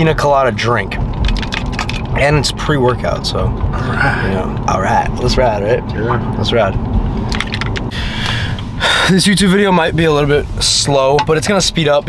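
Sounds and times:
sharp breath out: 0:07.9 - 0:09.1.

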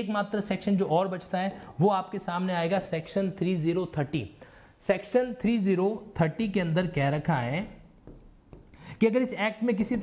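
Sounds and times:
man speaking: 0:00.0 - 0:08.0, 0:09.0 - 0:10.0
marker writing on whiteboard: 0:05.2 - 0:10.0.

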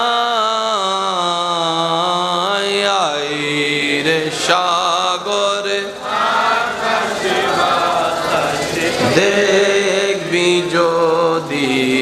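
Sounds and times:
man chanting amplified: 0:00.0 - 0:12.0.

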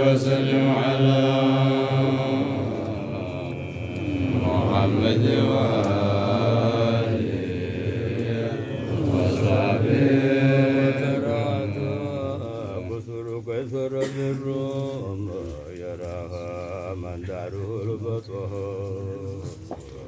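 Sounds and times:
low hum of voices: 0:00.0 - 0:20.0
men chanting: 0:00.0 - 0:20.0.

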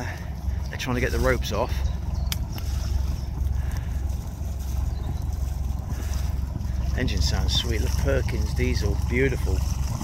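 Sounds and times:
diesel boat engine idling: 0:00.0 - 0:10.0.

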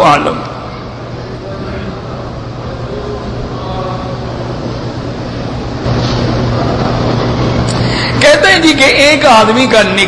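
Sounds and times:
low hum: 0:00.0 - 0:08.4
steady background hiss: 0:00.0 - 0:10.0.

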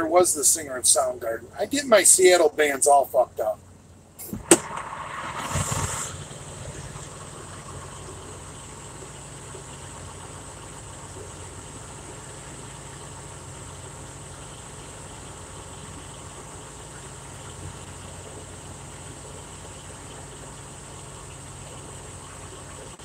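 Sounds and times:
truck engine idling: 0:00.0 - 0:23.0
short burst of noise: 0:04.2 - 0:07.1.

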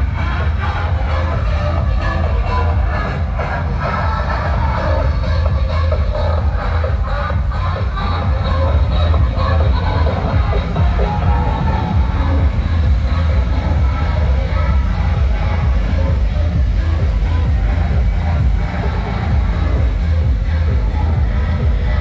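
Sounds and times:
electronic dance music over loudspeakers: 0:00.0 - 0:22.0.

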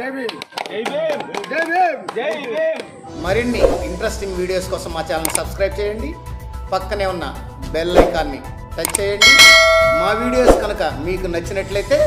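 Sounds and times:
background music: 0:01.5 - 0:12.0
bell chime: 0:09.2 - 0:10.6.

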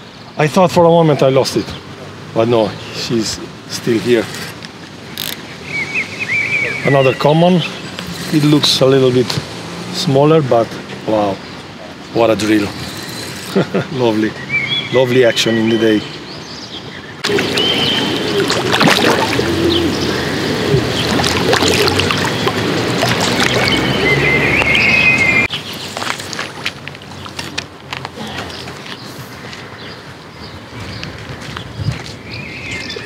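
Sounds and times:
birds chirping: 0:00.0 - 0:33.0
water splashing and churning: 0:17.2 - 0:28.8.

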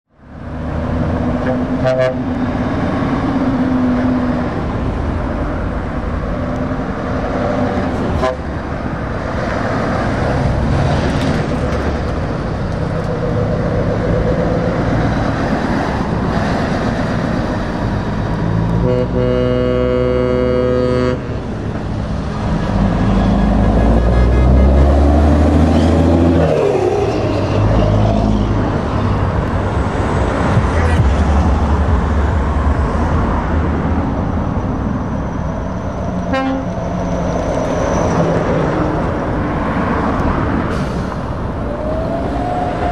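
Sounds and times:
trucks driving past: 0:00.1 - 0:42.9
truck air horn: 0:01.4 - 0:02.3, 0:08.1 - 0:08.6, 0:18.8 - 0:21.4, 0:23.2 - 0:26.3, 0:36.3 - 0:36.8.

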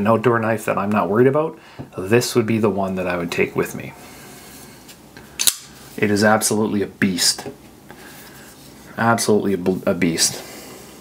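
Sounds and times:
knife blade snapping open: 0:05.4 - 0:05.7.

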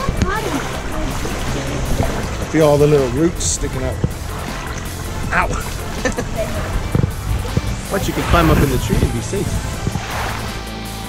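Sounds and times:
voices: 0:00.0 - 0:10.2
water sloshing around wading legs: 0:00.0 - 0:11.0.

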